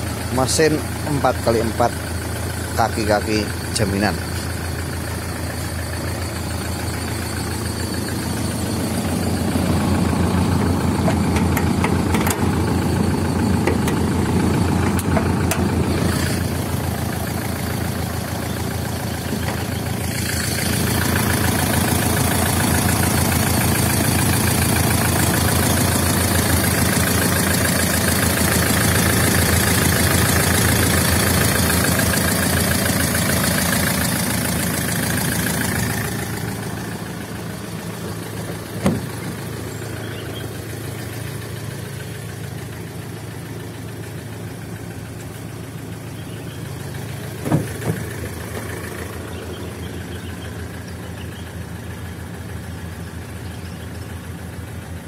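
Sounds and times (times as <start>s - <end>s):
diesel engine idling: 0.0s - 55.0s.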